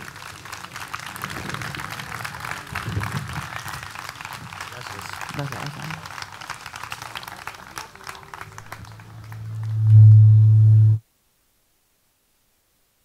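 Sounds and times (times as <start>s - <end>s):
audience applause: 0.0s - 10.0s
low hum from pa system: 8.6s - 11.0s.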